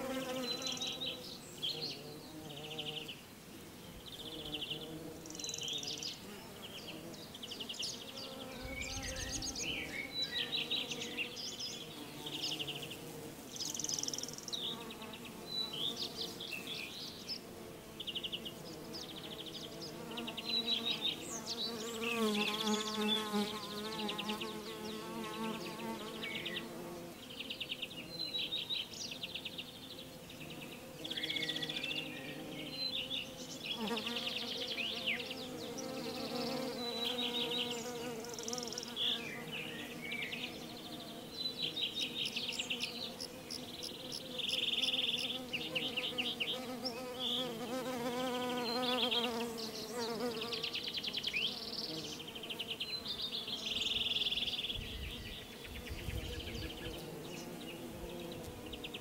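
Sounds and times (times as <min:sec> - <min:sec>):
bees buzzing: 0:00.0 - 0:59.0.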